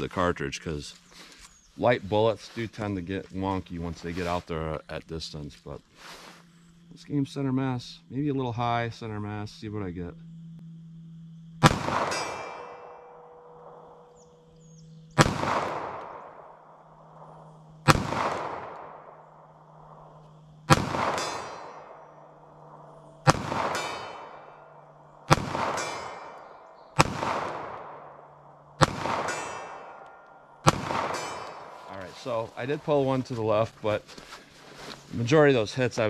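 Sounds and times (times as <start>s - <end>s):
pistol shots echoing: 11.6s - 14.1s, 15.2s - 19.8s, 20.6s - 31.9s.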